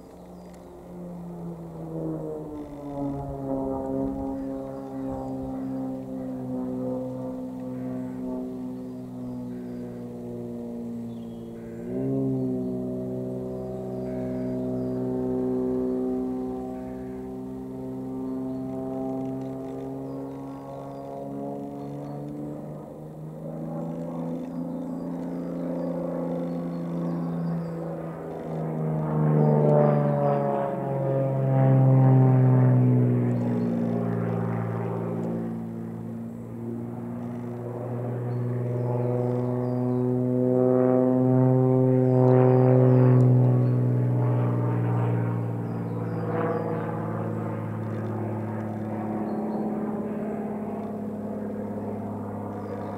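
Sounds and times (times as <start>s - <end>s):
airplane engine and propeller droning: 0.0s - 52.9s.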